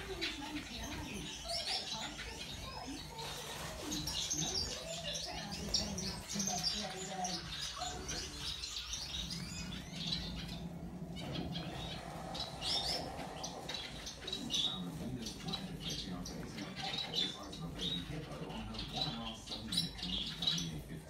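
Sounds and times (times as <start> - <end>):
finches chirping: 0.0 - 21.0.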